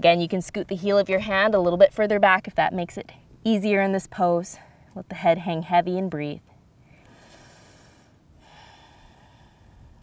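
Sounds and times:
person breathing slowly: 6.8 - 10.0.

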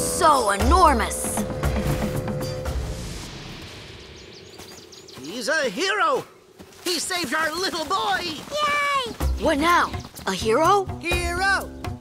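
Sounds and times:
high bird chirps: 3.7 - 5.8.

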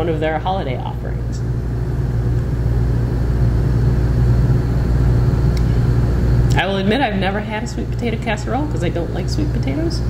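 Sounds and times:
machine rumble with hum: 0.0 - 10.0.

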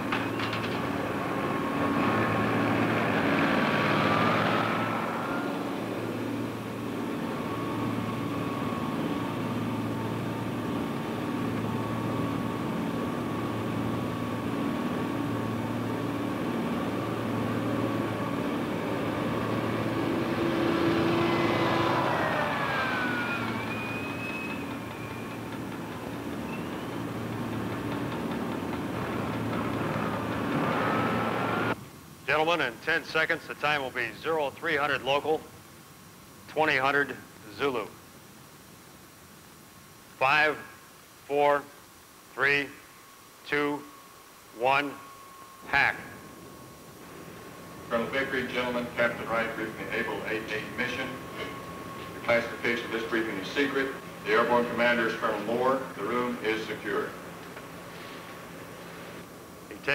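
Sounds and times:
lift truck engine running: 0.0 - 31.8, 44.6 - 59.9
whine shifting in pitch: 0.0 - 31.8, 42.4 - 59.9.

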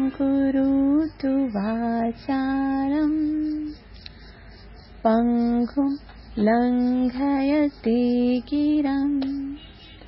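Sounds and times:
woman chanting: 0.0 - 3.9, 4.8 - 9.8.

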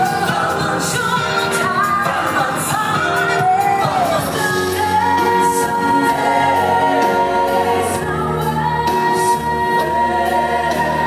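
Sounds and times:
pop music accompaniment: 0.0 - 11.0
woman singing into a microphone: 0.0 - 11.0.

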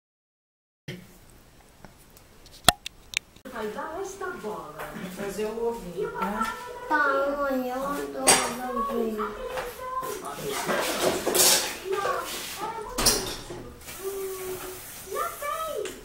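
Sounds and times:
child's voice: 5.7 - 16.0
dishes and pan clattering: 8.1 - 13.8.

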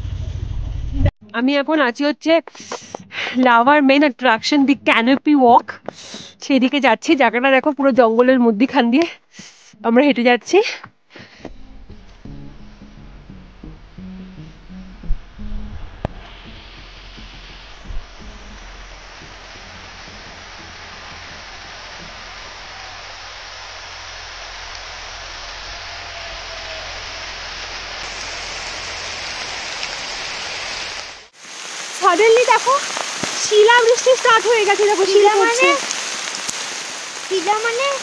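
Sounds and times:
low rumble: 0.0 - 1.1, 11.5 - 31.3
guitar music: 11.5 - 22.1
rain and ice pellets on foliage: 16.8 - 38.0.

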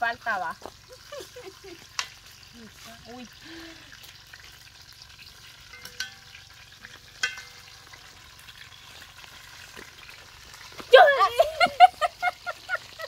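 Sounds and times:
chicken sizzling in a pan: 0.0 - 13.0
metal spoon clinking on pan: 5.7 - 7.8.

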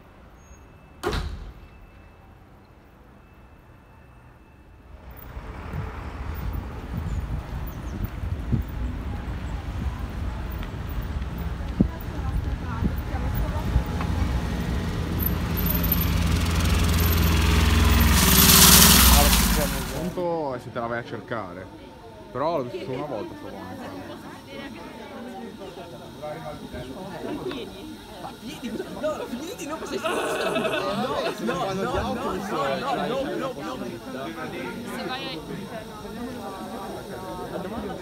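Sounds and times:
motorbikes rushing past: 5.0 - 20.2
low outdoor hum: 8.8 - 20.3
sharp bang: 15.4 - 20.2.

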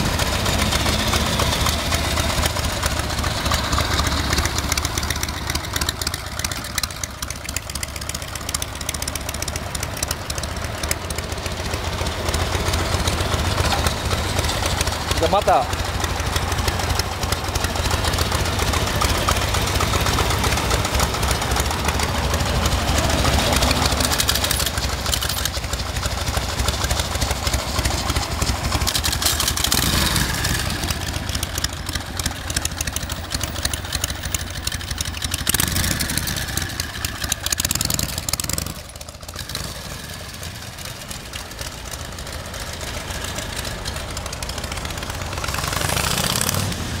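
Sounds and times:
motorcycle engine idling: 0.0 - 47.0
street traffic: 0.0 - 47.0.

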